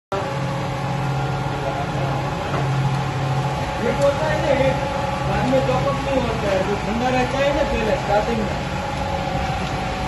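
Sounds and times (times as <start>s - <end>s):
oil press machine humming: 0.1s - 10.0s.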